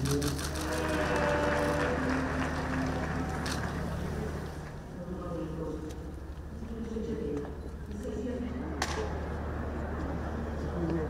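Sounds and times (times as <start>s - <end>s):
indistinct voices: 0.0s - 5.6s.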